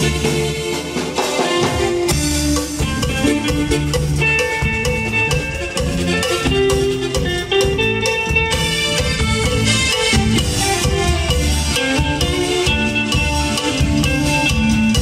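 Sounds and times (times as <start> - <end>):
drum kit steady beat: 0.0 - 15.0
electric guitar: 0.0 - 15.0
electric keyboards: 0.0 - 15.0
held keyboard melody: 1.6 - 15.0.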